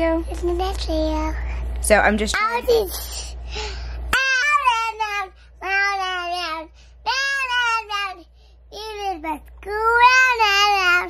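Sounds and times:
child singing: 4.1 - 11.0.

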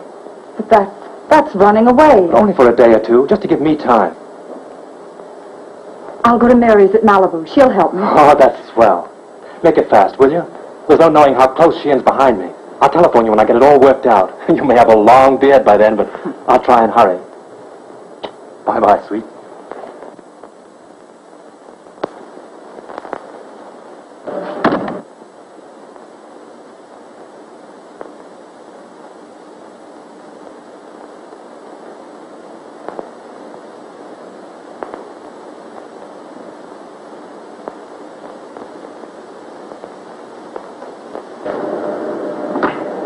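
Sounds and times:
film soundtrack hiss: 0.0 - 43.0
clicks and pops: 21.7 - 23.4, 32.8 - 33.2, 34.7 - 36.2, 37.6 - 39.0.

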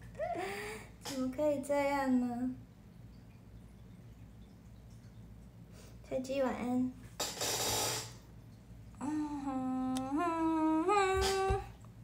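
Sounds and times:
woman humming: 9.0 - 11.7.

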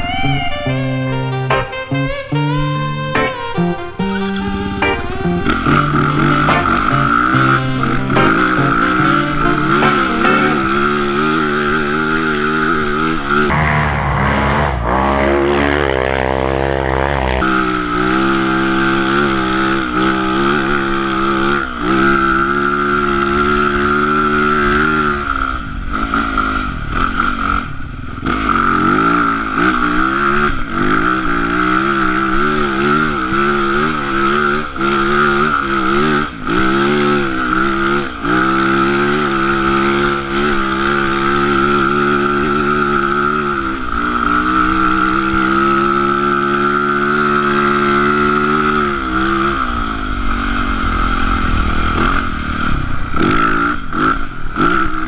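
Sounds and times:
dirt bike engine revving: 0.0 - 55.0.

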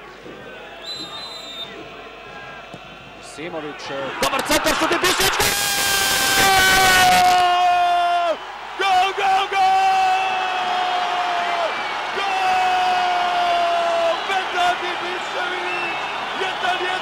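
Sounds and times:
stadium crowd cheering: 0.0 - 17.0.

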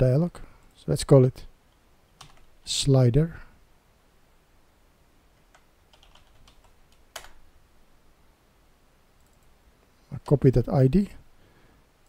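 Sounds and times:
keyboard typing: 2.2 - 2.5, 5.4 - 7.4.

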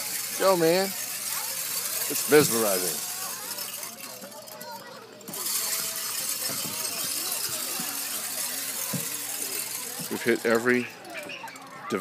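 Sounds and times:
distant people talking: 0.0 - 12.0.

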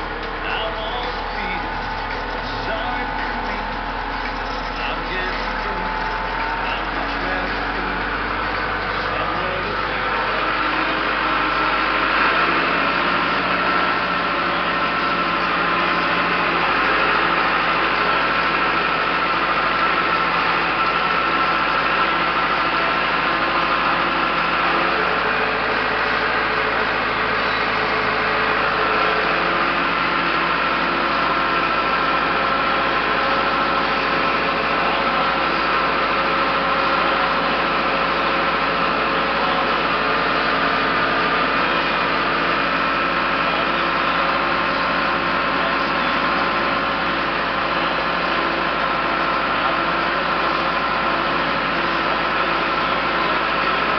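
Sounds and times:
tractor engine running: 0.0 - 53.9.

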